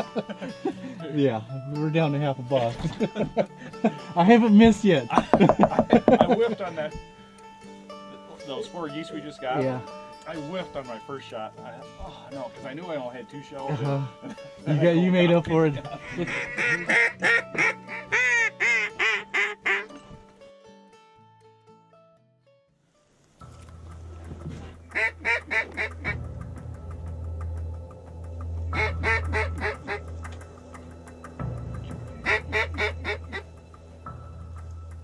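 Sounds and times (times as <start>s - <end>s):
low steady music: 0.0s - 35.0s
mallard quacking: 16.0s - 19.9s, 25.0s - 26.2s, 28.8s - 30.0s, 32.2s - 33.5s.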